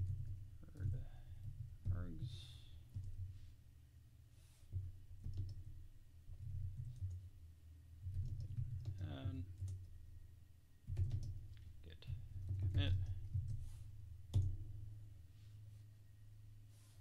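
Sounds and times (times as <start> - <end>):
computer keyboard keys clicking: 5.2 - 5.6, 6.4 - 7.2, 8.1 - 9.9, 10.9 - 11.6.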